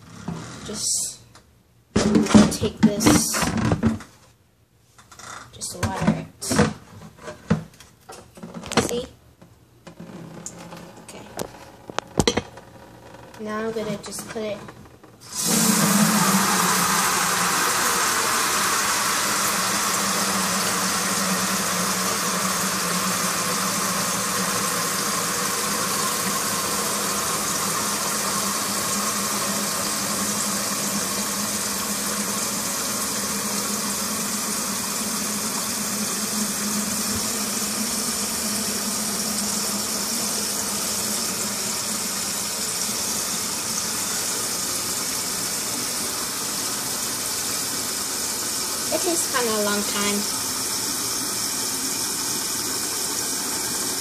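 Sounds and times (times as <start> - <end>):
tap water running into container: 15.2 - 54.0.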